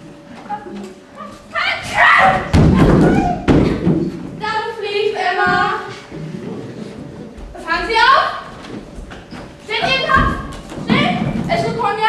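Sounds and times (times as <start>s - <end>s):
heavy thump on wooden stage: 2.2s - 4.4s, 9.8s - 11.9s.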